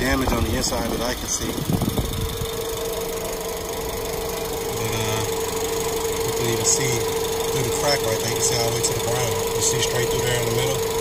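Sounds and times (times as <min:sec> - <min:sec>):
car engine idling: 0:00.0 - 0:11.0
constant engine whine: 0:00.0 - 0:11.0.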